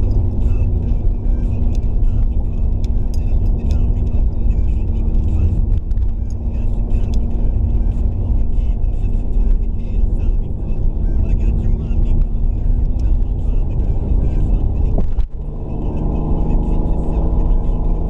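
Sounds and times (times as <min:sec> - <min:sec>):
car engine and road rumble: 0:00.0 - 0:18.0
light ticks: 0:12.1 - 0:13.3.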